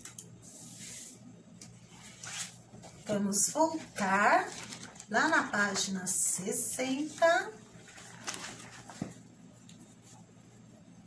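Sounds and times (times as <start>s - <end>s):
paper rustling: 1.9s - 6.0s, 6.8s - 10.3s.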